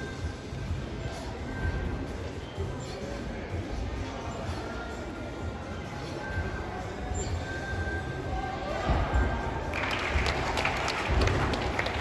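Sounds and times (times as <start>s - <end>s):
applause: 9.7s - 12.0s.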